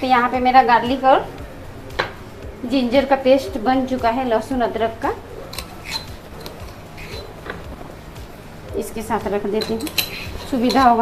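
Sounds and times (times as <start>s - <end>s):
spoon clicking against utensils: 5.5s - 7.6s, 9.5s - 11.0s.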